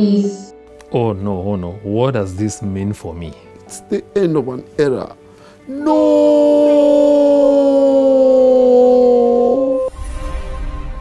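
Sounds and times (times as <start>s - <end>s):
man wailing: 5.7s - 9.9s.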